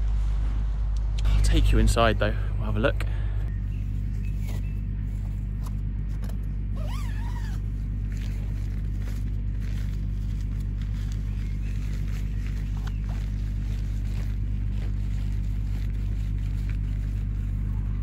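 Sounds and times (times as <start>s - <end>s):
steady low rumble: 0.0s - 18.0s
zip pulled open: 6.7s - 8.4s
tent fabric handled: 6.7s - 18.0s.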